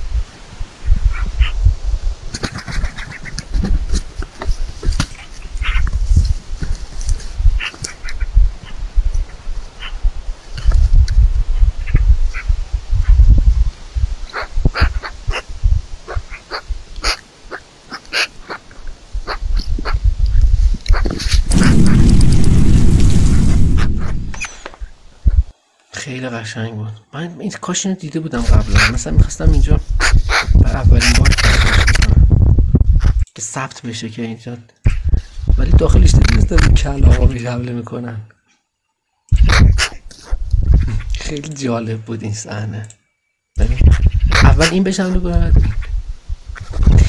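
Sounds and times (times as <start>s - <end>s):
wind rumble on microphone: 0.0s - 17.2s, 18.4s - 25.5s, 28.4s - 33.3s, 34.8s - 37.4s, 39.3s - 41.3s, 43.6s - 47.0s
wings rushing: 2.3s - 5.9s, 20.9s - 25.5s
magpies chattering: 5.2s - 5.9s, 7.6s - 8.8s, 14.3s - 15.5s, 16.1s - 20.0s.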